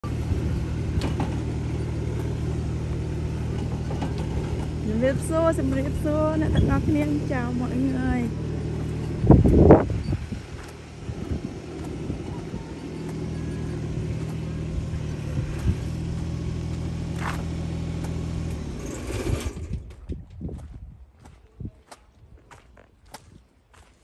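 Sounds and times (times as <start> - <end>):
small engine running: 0.0 - 20.0
loud engine burst: 3.5 - 20.0.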